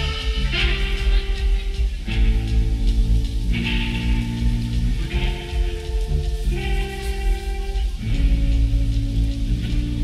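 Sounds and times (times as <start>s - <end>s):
electric guitars and bass chords: 0.0s - 10.0s.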